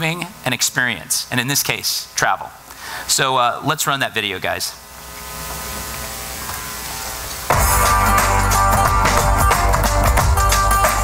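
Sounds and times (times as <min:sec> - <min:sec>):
electrical buzz with low hum: 0:00.0 - 0:11.0.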